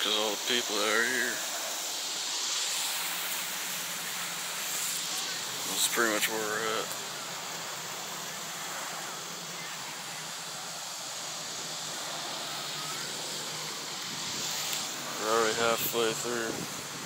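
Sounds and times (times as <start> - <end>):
even hiss: 0.0 - 17.0.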